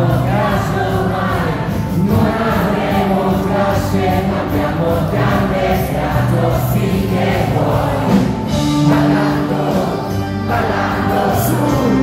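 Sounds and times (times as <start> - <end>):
audience singing along: 0.0 - 12.0
live rock band playing: 0.0 - 12.0.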